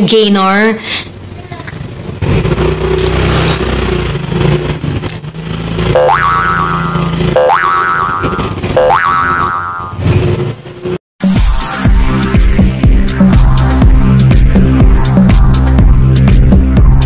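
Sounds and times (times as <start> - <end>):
motorcycle engine running: 1.2 - 11.0, 11.9 - 17.0
cartoon boing effects: 5.9 - 10.0.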